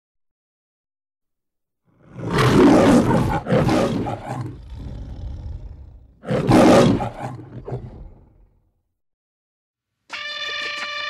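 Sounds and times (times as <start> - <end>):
lion roaring: 2.0 - 8.6.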